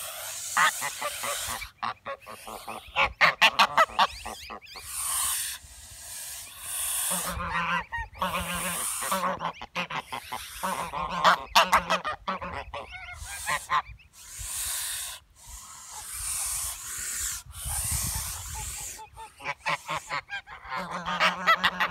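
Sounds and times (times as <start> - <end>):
geese hissing: 0.0 - 21.9
geese honking: 0.0 - 21.9.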